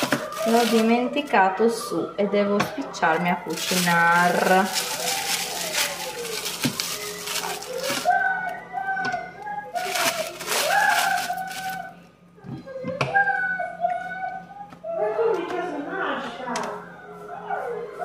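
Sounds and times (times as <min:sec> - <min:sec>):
plastic wrapping crinkling and tearing: 0:00.0 - 0:01.2, 0:03.0 - 0:08.6, 0:09.7 - 0:12.0.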